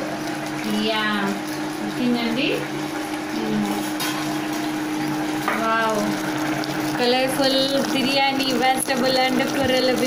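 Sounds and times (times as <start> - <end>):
induction cooktop humming: 0.0 - 10.0.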